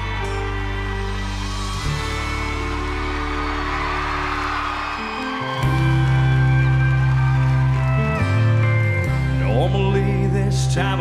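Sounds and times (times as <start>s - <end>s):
band playing slow country song: 0.0s - 11.0s
deep bass notes: 5.6s - 11.0s.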